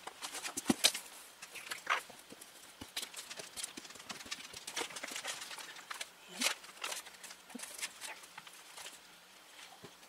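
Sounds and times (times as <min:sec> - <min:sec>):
paper rustling: 0:02.8 - 0:09.9.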